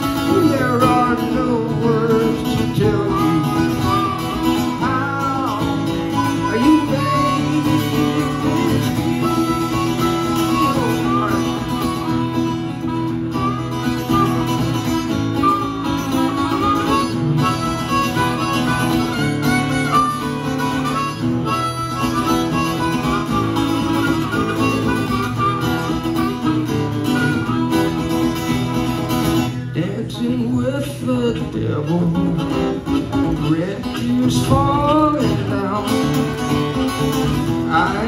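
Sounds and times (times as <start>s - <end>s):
harmonica melody: 0.0s - 29.8s, 31.8s - 38.0s
acoustic guitar strumming: 0.0s - 38.0s.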